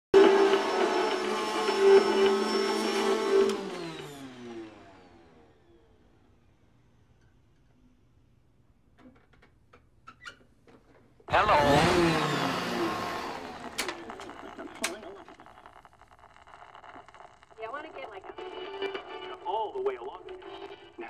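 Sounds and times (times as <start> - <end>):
vacuum cleaner whine: 0.2 - 6.8, 11.3 - 17.2
distorted voice: 11.3 - 12.5, 13.8 - 15.9, 16.6 - 18.4
radio static: 13.5 - 20.4.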